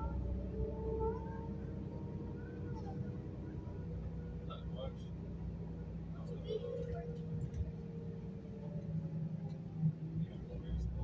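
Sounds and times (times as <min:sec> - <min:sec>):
bus engine rumble: 0:00.0 - 0:11.0.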